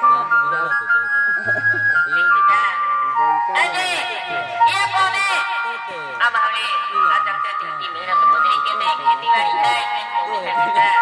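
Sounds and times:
electronic keyboard melody: 0.0s - 11.0s
voices talking: 0.0s - 11.0s.

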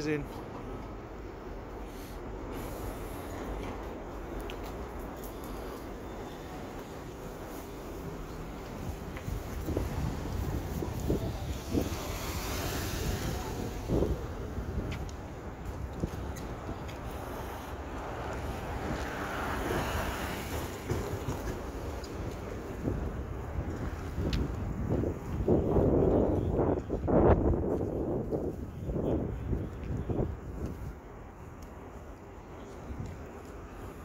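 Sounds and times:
traffic rumble: 0.0s - 34.0s
vehicles passing: 0.0s - 34.0s
wind buffeting microphone: 6.7s - 34.0s.

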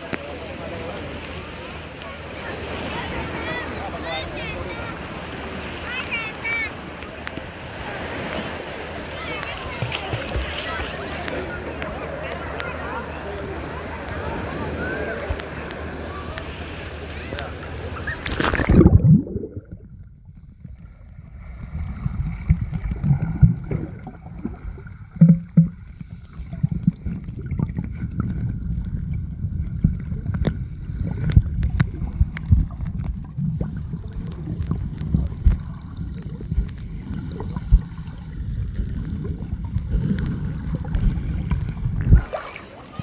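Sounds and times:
sea water lapping: 0.0s - 20.0s, 20.6s - 43.0s
muffled underwater sloshing: 0.0s - 43.0s
wind on microphone: 26.0s - 42.4s.

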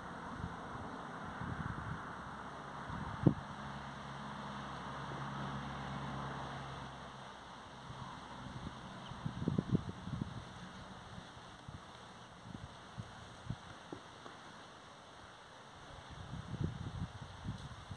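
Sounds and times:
wind and rustling: 0.0s - 17.9s.

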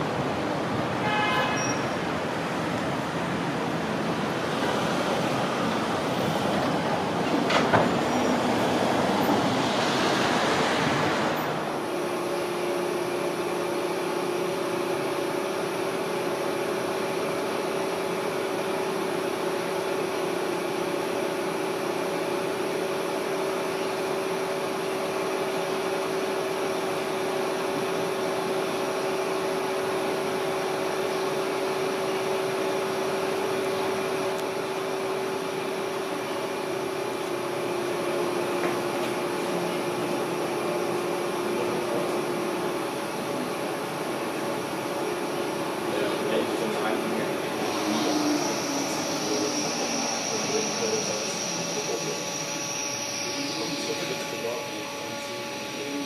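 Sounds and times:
funicular car humming on track: 0.0s - 56.0s
street traffic: 0.0s - 56.0s.

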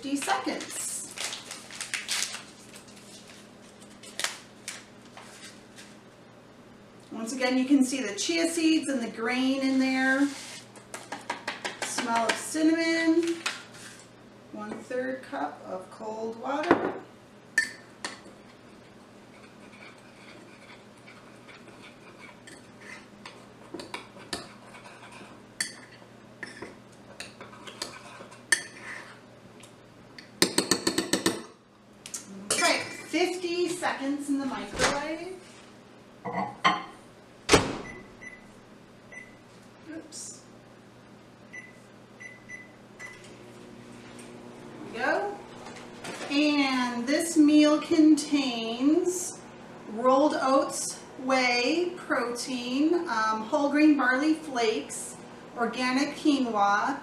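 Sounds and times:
packet crinkling: 0.5s - 4.9s
sachet tearing open: 1.0s - 4.8s.

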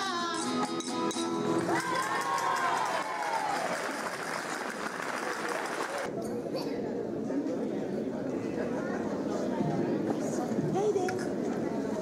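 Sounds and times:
audience applauding and cheering: 1.6s - 6.1s
long falling shout: 1.7s - 3.8s.

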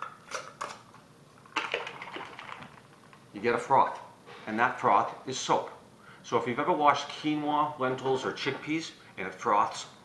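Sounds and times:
jar rattling and water sloshing: 1.5s - 2.9s.

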